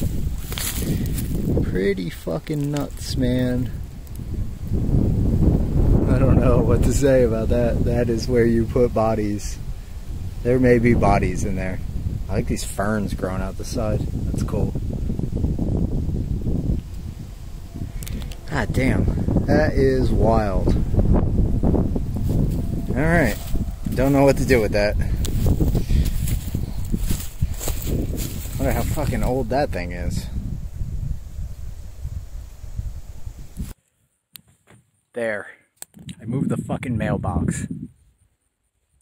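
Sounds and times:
wind buffeting microphone: 0.0 - 33.8, 35.9 - 38.1.

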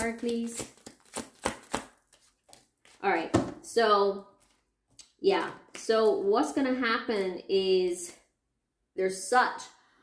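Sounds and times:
cards slapping and tapping: 0.0 - 3.0.

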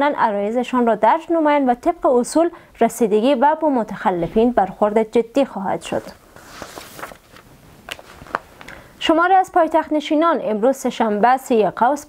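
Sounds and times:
background hiss: 2.3 - 10.1
paper rustling: 6.4 - 8.8.

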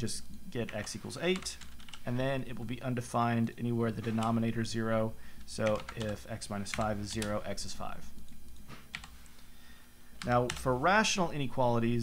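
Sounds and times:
computer keyboard keystrokes: 5.5 - 7.4, 8.2 - 9.2.

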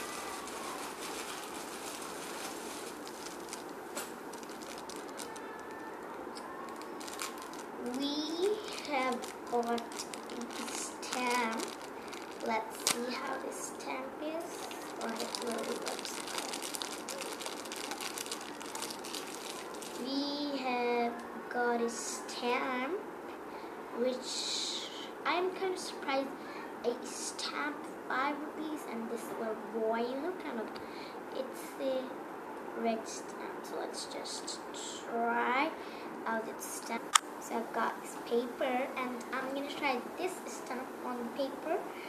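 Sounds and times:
plastic bag rustling: 0.0 - 20.2
plastic packet crinkling: 0.0 - 20.2.

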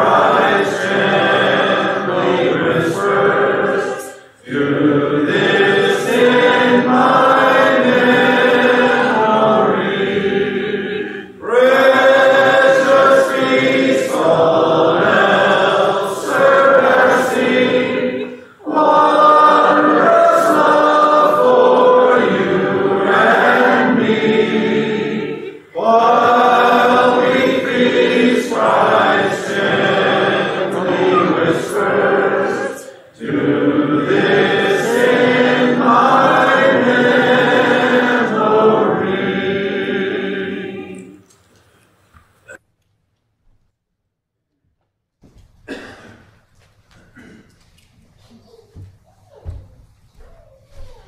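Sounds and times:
congregation singing a hymn: 0.0 - 41.4.

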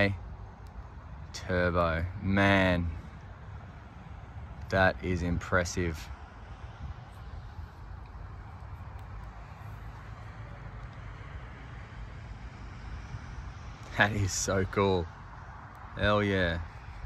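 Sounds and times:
distant road traffic rumble: 0.0 - 17.0.

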